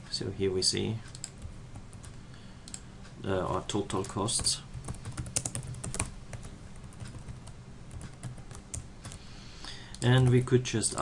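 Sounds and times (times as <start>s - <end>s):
typing on computer keyboard: 4.0s - 9.2s.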